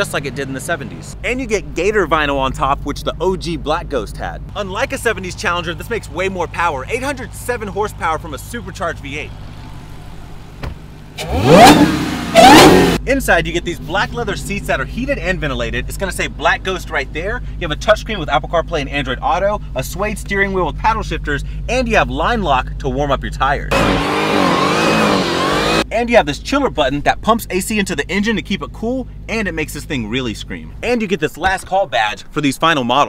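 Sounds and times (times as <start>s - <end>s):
car engine idling and revving: 0.0s - 26.0s, 26.6s - 31.6s
car engine revving hard: 11.2s - 13.0s, 23.7s - 25.8s.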